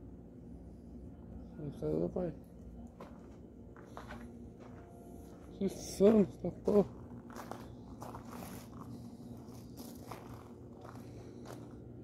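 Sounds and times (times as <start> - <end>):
low steady hum: 0.0 - 12.0
handheld camera scuffs and rustles: 2.9 - 11.9.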